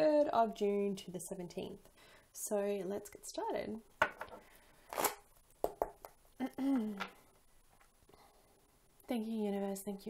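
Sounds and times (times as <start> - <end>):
cards being shuffled: 4.9 - 6.2.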